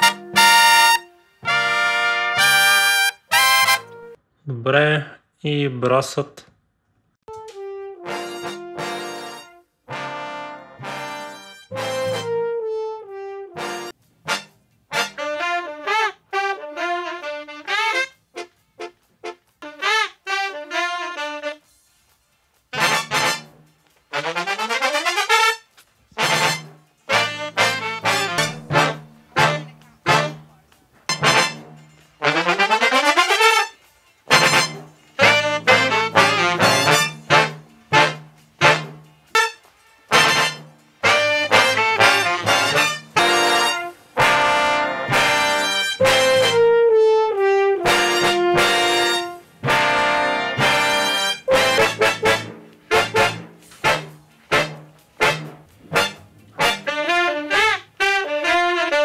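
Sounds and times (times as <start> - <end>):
brass section playing: 0.0 - 4.2, 7.3 - 21.7, 22.7 - 59.0.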